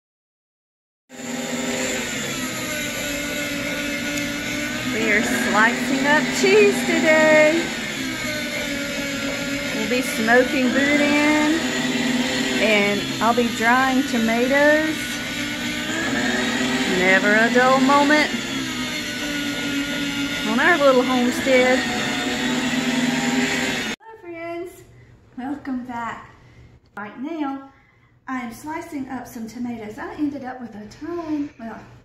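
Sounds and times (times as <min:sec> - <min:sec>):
meat slicer motor humming: 0:01.1 - 0:24.0.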